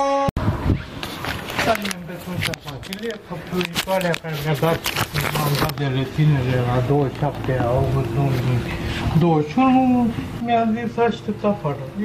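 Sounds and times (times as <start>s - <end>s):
phone rubbing against clothing: 0.6s - 6.7s
person talking: 1.6s - 12.0s.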